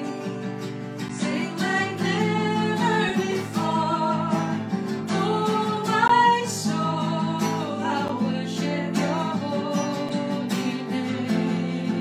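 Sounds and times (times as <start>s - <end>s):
acoustic guitar strumming: 0.0s - 12.0s
woman singing: 0.0s - 12.0s.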